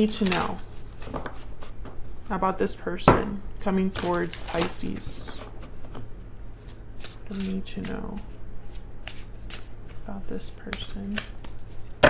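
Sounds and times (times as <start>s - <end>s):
cards being shuffled: 0.0s - 2.0s, 3.8s - 12.0s.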